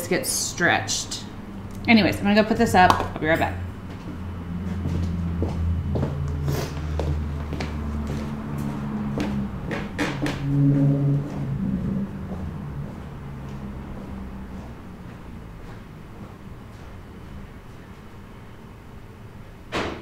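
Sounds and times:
low droning hum: 0.0 - 19.7
knocks and clicks in workshop: 9.2 - 10.4, 19.7 - 20.0.

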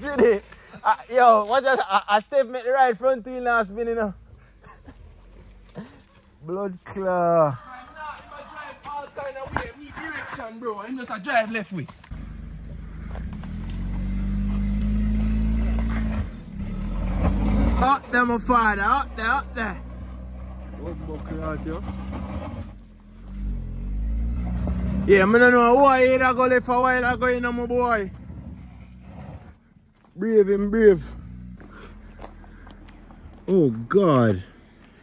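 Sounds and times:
van engine and tyres on gravel: 0.0 - 35.0
minivan engine working hard: 12.1 - 29.4.

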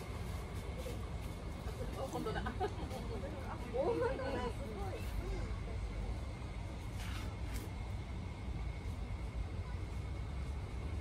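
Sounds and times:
faint brief rustles: 6.8 - 7.7.

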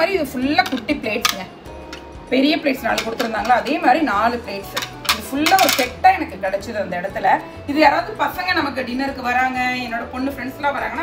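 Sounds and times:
ceramic plates clinking: 2.8 - 3.9, 4.6 - 5.9.

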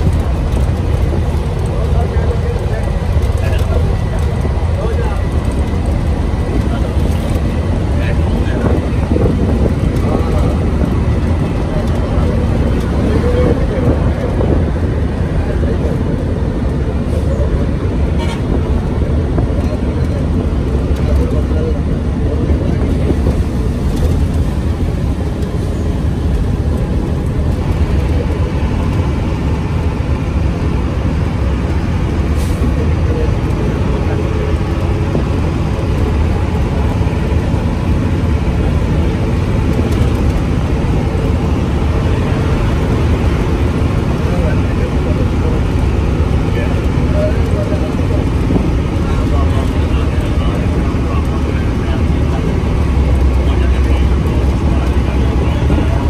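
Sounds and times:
vehicle road and engine rumble: 0.0 - 56.0.

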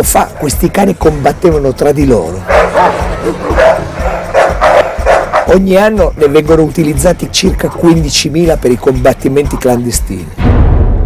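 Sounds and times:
dogs fighting and barking: 2.3 - 5.6.

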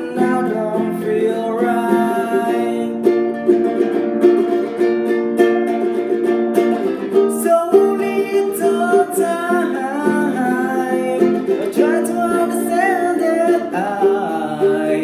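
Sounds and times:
man singing: 0.0 - 3.2, 7.1 - 15.0
nylon-string guitar strummed: 0.0 - 15.0.

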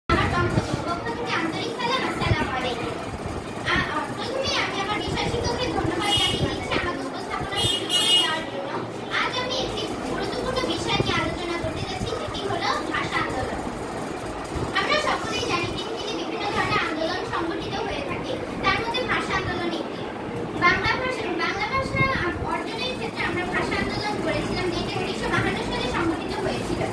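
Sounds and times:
girls speaking: 0.1 - 26.9.

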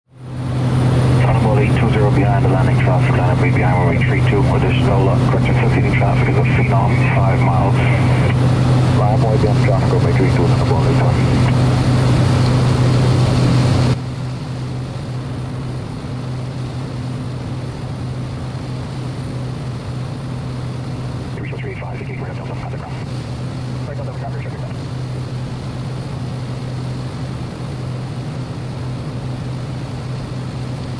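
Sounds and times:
propeller engine droning: 0.1 - 30.9
faint radio voices: 1.1 - 11.8, 21.2 - 25.1.

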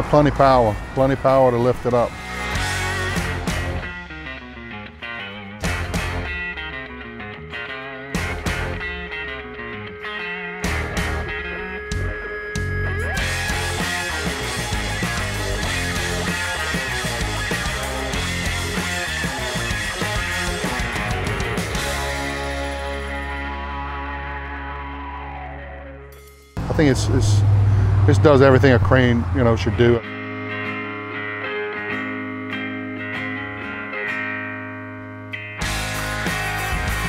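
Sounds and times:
background music with guitar: 0.0 - 27.5, 28.2 - 37.0.

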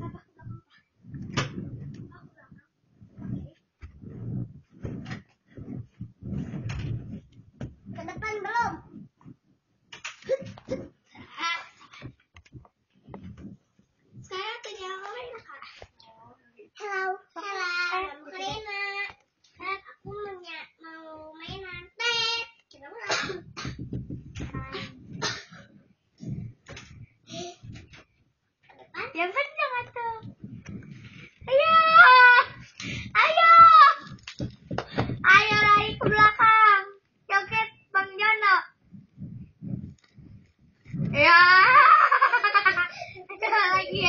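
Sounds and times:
soft knocks: 23.8 - 25.2.

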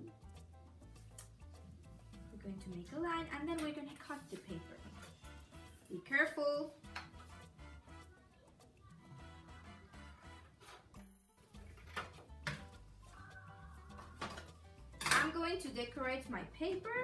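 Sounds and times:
quiet background music: 0.0 - 17.0.

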